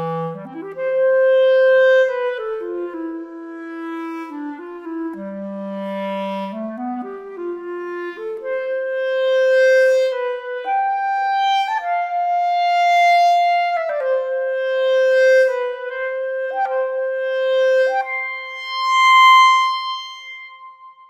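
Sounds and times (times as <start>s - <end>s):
solo clarinet playing legato: 0.0s - 21.0s.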